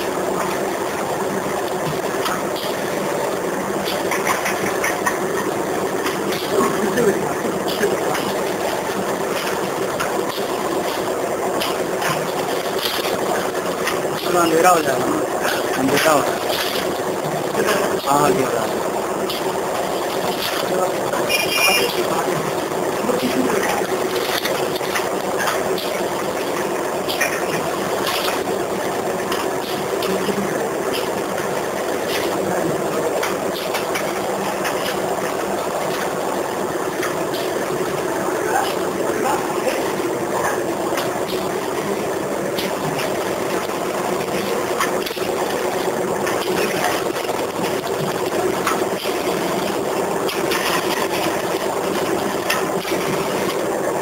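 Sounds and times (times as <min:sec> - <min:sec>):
packing machine humming: 0:00.0 - 0:54.0.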